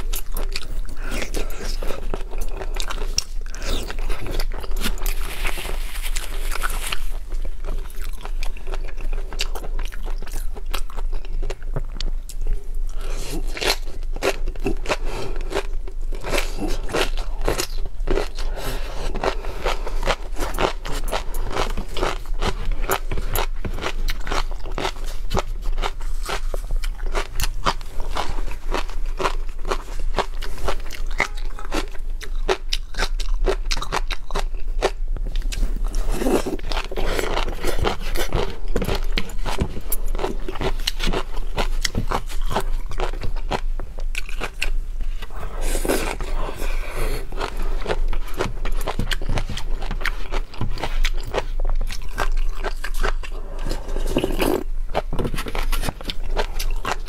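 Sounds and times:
wet chewing: 0.0s - 57.0s.

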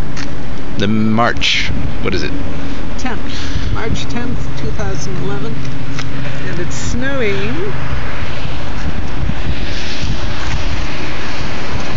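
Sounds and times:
wind blowing on microphone: 0.0s - 11.9s.

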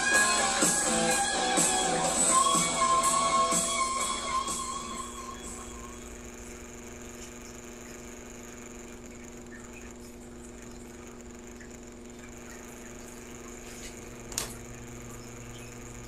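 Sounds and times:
electrical hum: 0.0s - 16.0s
thin high whine: 0.0s - 16.0s.

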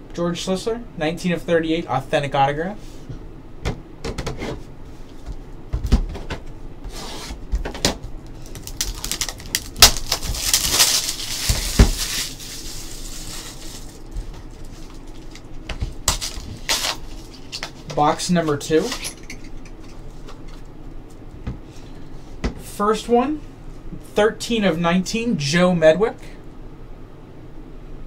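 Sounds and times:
packaging rustling: 8.2s - 17.9s.

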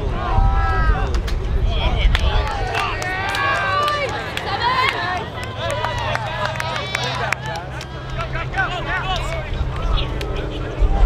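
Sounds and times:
low rumble: 0.0s - 4.8s, 5.6s - 11.0s
voices shouting: 1.7s - 11.0s.

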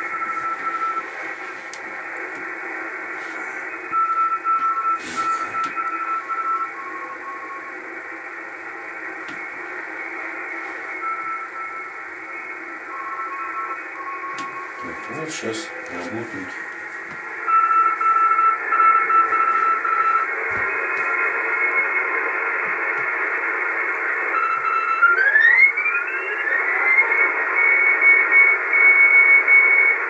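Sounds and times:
morse code keyed tones: 0.0s - 1.7s, 2.9s - 8.2s, 9.1s - 22.1s
radio band noise hiss: 0.0s - 30.0s.

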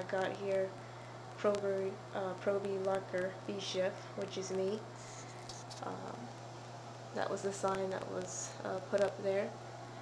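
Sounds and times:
low electrical hum: 0.0s - 10.0s
woman saying uh: 5.8s - 6.3s.

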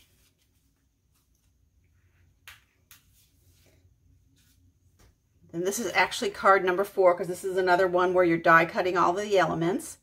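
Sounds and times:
paper rustling: 0.0s - 1.6s.

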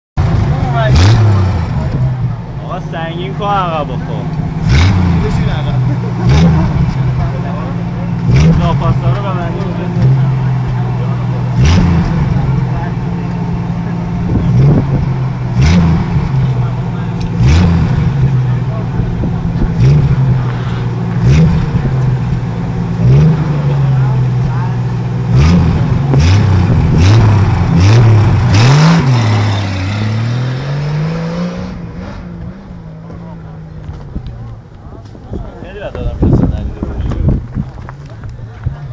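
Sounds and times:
engine idling and revving: 0.2s - 38.9s.

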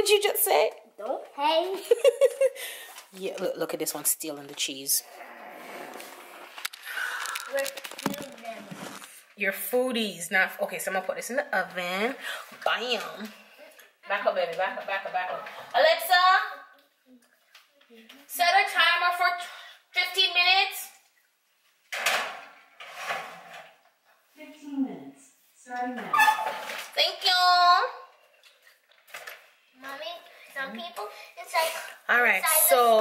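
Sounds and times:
soft rustling: 5.9s - 9.4s.

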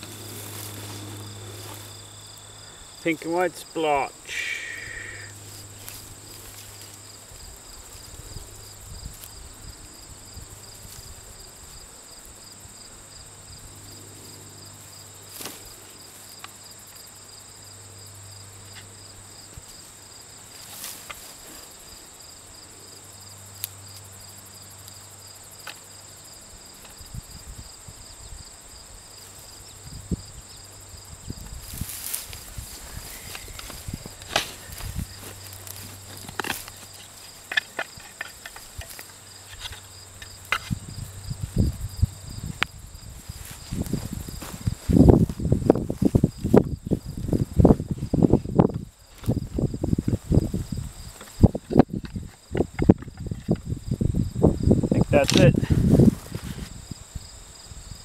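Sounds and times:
hands digging in soil and straw: 0.0s - 2.1s, 31.6s - 37.4s, 43.2s - 48.2s
insects chirring: 0.0s - 58.0s.

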